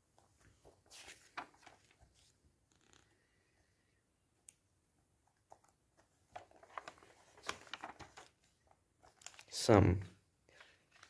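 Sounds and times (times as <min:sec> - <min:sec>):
paper pages turning: 0:00.2 - 0:03.2, 0:05.4 - 0:09.7, 0:10.6 - 0:11.0.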